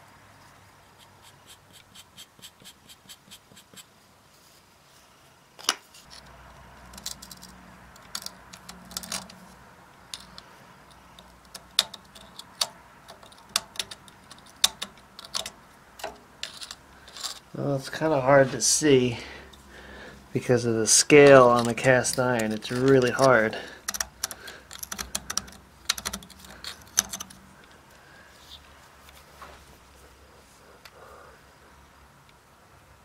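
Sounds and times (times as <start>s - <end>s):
metal tools clicking on iron: 6.9s - 9.4s, 10.0s - 17.5s, 21.2s - 27.8s.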